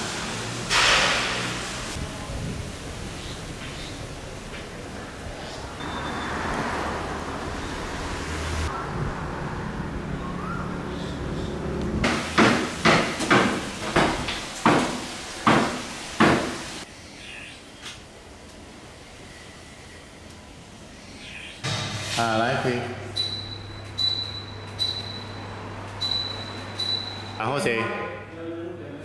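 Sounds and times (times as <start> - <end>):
steady background noise: 0.0 - 29.0.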